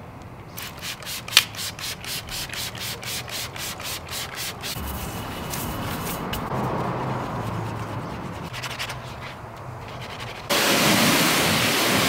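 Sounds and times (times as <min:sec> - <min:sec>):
brush scrubbing a wet wheel: 0:00.6 - 0:12.0.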